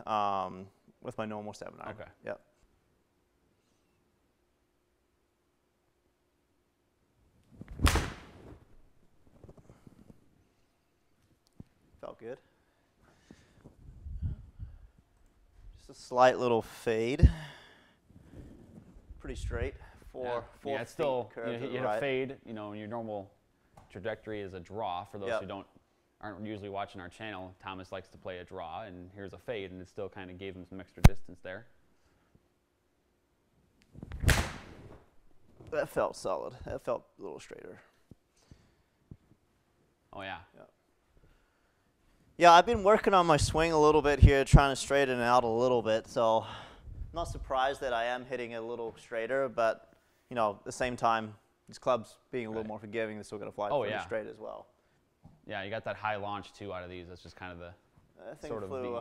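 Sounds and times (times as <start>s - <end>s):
golf ball struck crack: 7.8s - 8.4s, 34.2s - 34.8s.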